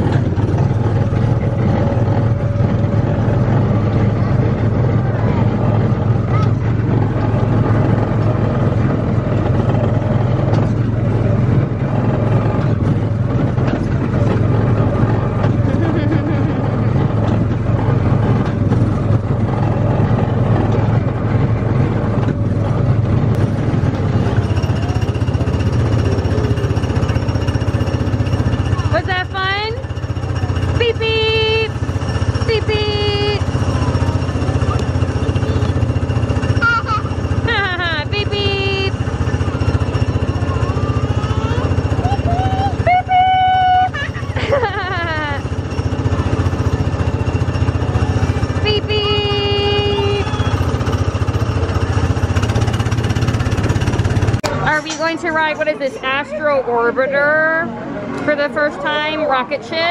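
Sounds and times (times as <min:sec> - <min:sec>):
small gasoline engine running: 0:00.0 - 0:56.3.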